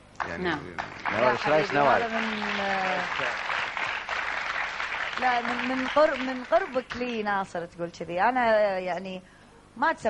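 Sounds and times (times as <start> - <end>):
audience applauding: 0.2 - 7.2.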